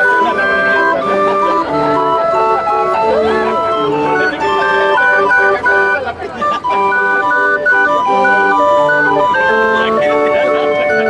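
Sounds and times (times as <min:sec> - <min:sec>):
barrel organ playing a tune: 0:00.0 - 0:11.0
people's voices: 0:00.0 - 0:11.0.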